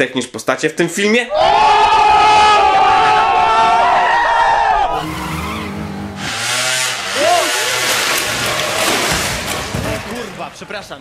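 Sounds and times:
crowd yelling: 1.3s - 10.6s
motor scooter engine: 5.0s - 11.0s
tyres skidding: 5.0s - 11.0s.

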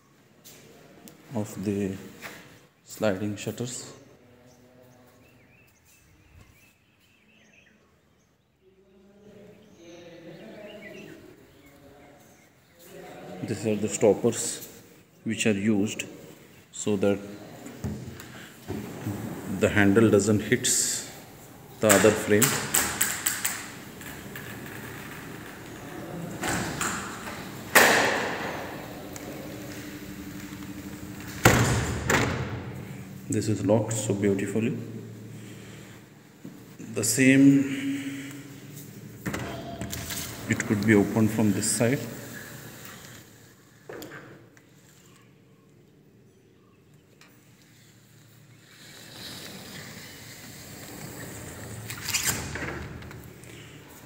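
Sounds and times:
sliding door sliding on track: 18.5s - 33.1s, 38.6s - 44.0s, 48.6s - 53.4s.

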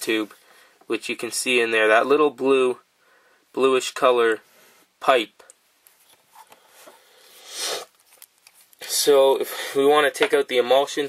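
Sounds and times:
small clicks and rustles: 7.9s - 8.8s.

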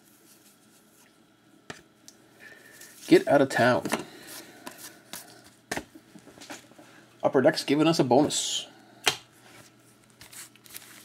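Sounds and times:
trading cards rustling: 10.1s - 11.0s.

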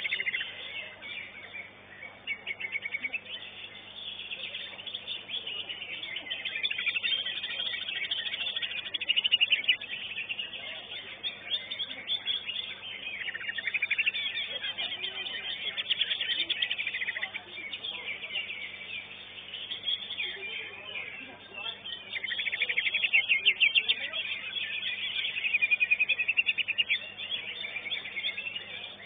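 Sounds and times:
bird chattering song: 0.0s - 29.0s.

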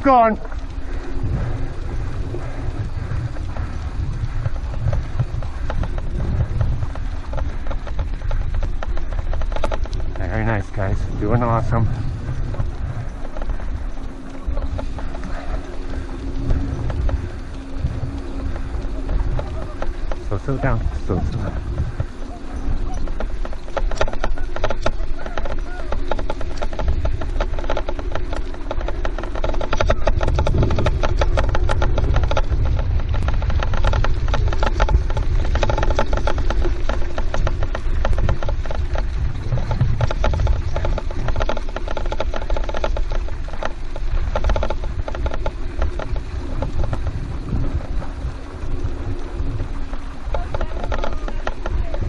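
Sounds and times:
dogs' paws pattering: 0.0s - 52.0s
gravel crunching: 0.0s - 52.0s
steady hum: 0.0s - 52.0s
wheels rolling on dirt road: 0.0s - 52.0s
wind rumble on microphone: 0.0s - 52.0s.

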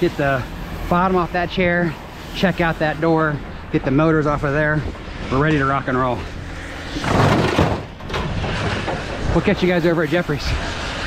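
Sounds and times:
metal bed frame scraping rattle: 5.2s - 9.8s.

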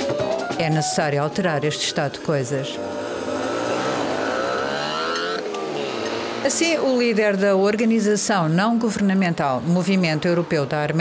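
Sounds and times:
street traffic: 0.0s - 11.0s
vehicle engine accelerating: 2.0s - 7.6s.

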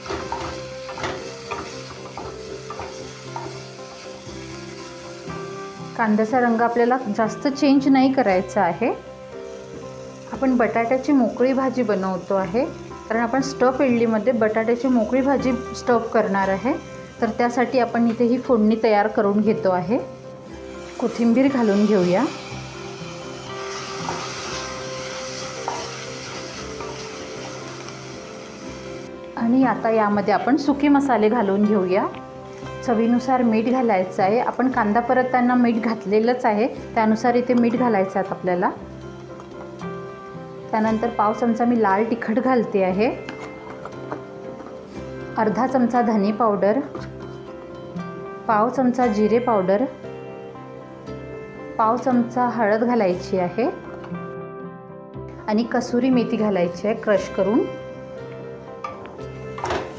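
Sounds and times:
onions sizzling in hot oil: 0.0s - 30.2s, 59.3s - 59.9s
soft background music: 0.0s - 59.9s.

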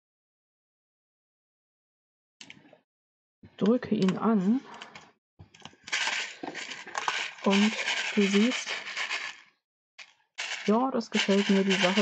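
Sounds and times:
sand and beads rattling in shaker: 5.9s - 12.0s.

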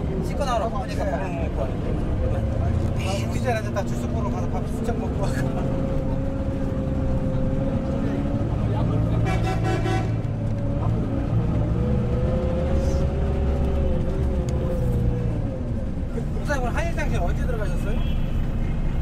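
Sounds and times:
bus engine droning: 0.0s - 19.0s
street traffic: 0.0s - 19.0s
vehicle horn honking: 9.2s - 10.2s.

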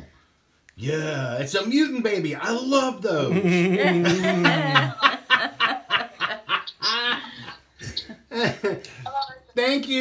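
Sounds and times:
person laughing: 3.3s - 8.9s
person chuckling breathily: 6.4s - 9.0s.

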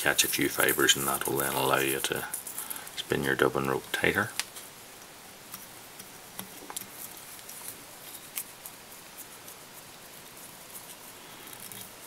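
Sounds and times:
steady hiss: 0.0s - 12.0s
small clicks and rustles: 4.3s - 12.0s.

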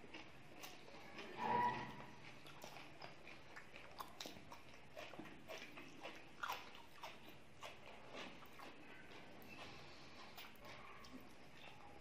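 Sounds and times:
faint chewing with smacks: 0.0s - 12.0s.

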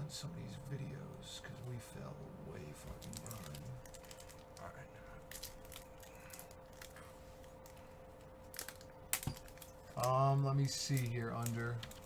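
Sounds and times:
plastic wrapper crackling and tearing: 2.8s - 7.8s, 8.4s - 12.0s.

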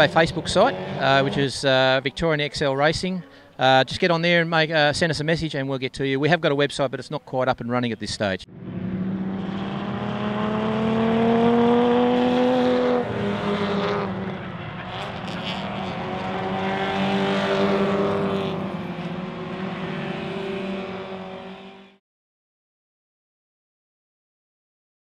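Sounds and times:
race car engines revving past: 0.0s - 3.6s, 8.5s - 22.0s.

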